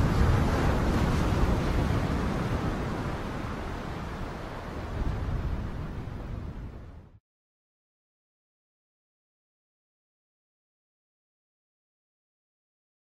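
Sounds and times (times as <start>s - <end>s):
rushing surf-like whoosh: 0.0s - 7.2s.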